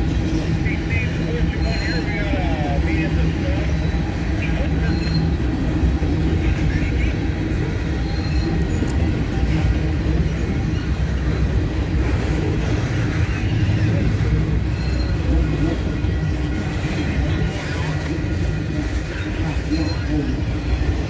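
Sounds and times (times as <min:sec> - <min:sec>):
freight train rolling past: 0:00.0 - 0:21.0.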